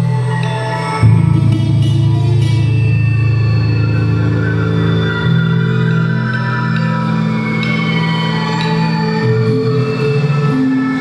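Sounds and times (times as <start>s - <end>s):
low sustained drone: 0.0s - 11.0s
steady layered tones: 0.0s - 11.0s.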